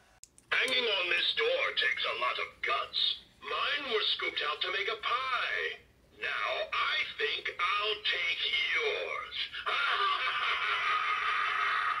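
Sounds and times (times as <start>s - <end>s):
recorded spooky voice speaking: 0.5s - 9.7s
sinister laugh: 9.4s - 12.0s.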